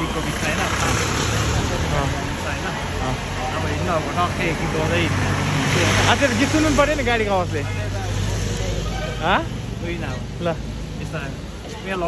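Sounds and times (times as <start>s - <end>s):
traffic on wet road: 0.0s - 12.0s.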